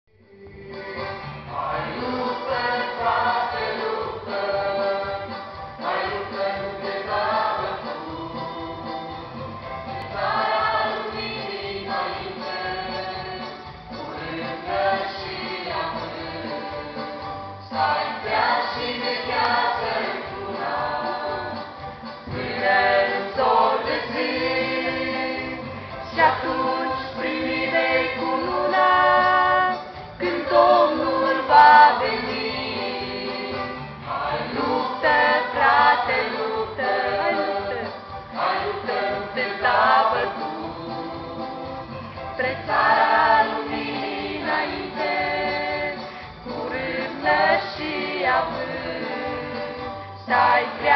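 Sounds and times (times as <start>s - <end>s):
mixed choir singing: 0.3s - 50.9s.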